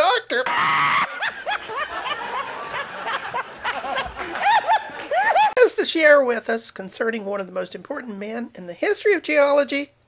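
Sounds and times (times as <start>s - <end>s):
snickering laughter: 0.5s - 5.6s.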